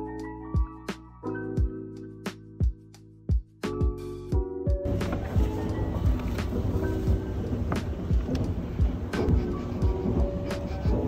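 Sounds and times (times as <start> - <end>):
lo-fi music with a beat: 0.0 - 11.0
escalator rumble and hiss: 4.9 - 11.0.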